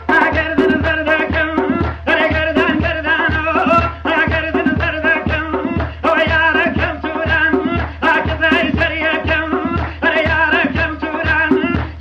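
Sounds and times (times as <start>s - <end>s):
drum beating: 0.0s - 12.0s.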